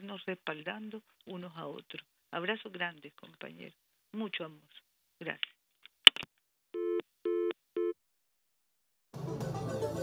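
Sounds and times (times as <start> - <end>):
telephone busy tone: 6.8 - 8.0.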